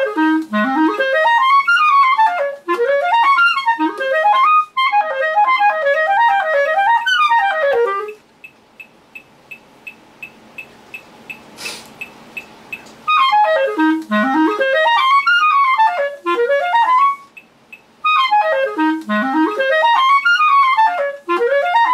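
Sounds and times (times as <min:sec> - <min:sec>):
clarinet scale runs: 0:00.0 - 0:08.2, 0:12.7 - 0:21.9
steady ticking: 0:07.8 - 0:15.4, 0:16.3 - 0:20.4.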